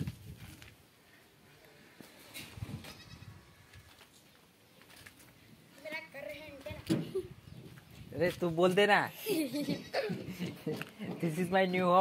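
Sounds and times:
goat bleating: 2.8s - 3.4s, 9.5s - 10.2s.

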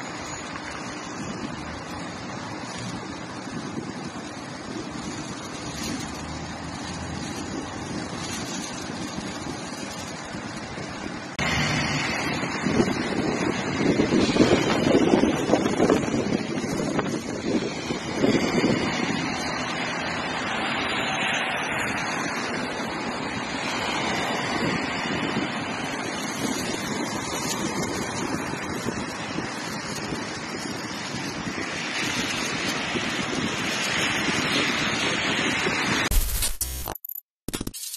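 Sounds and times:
traffic on wet road: 0.0s - 36.1s
wind on microphone: 0.0s - 36.1s.

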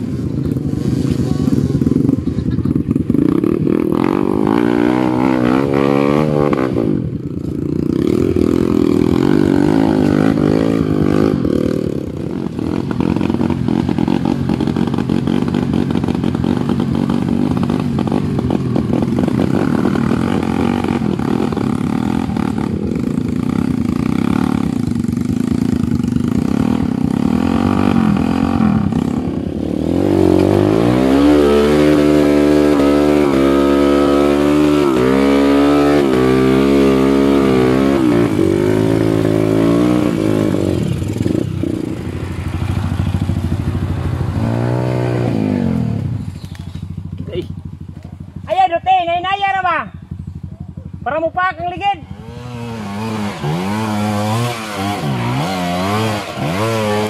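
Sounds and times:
dirt bike engines revving: 0.0s - 57.0s.

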